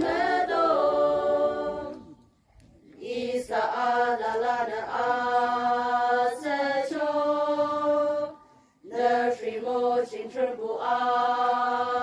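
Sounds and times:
women's choir singing: 0.0s - 2.2s, 3.0s - 12.0s.

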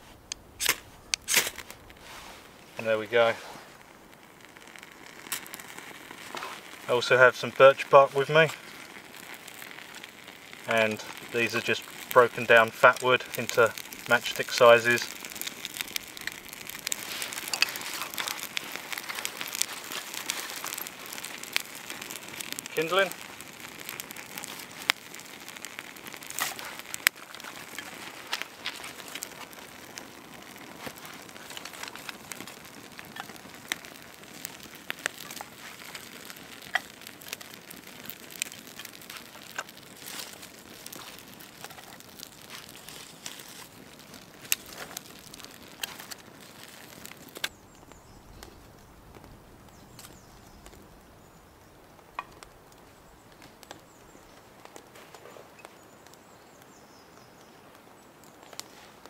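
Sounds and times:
campfire crackling and popping: 0.0s - 59.0s.

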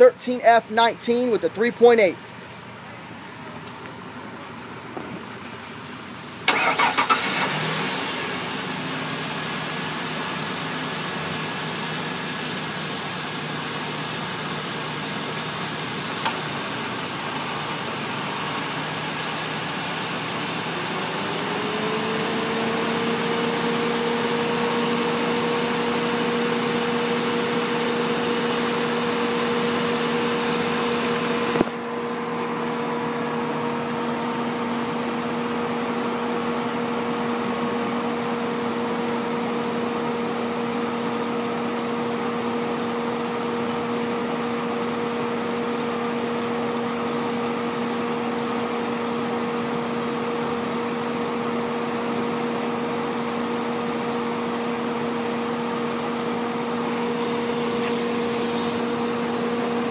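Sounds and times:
car engine starting and idling: 0.0s - 59.9s
steady whine: 55.4s - 59.9s.

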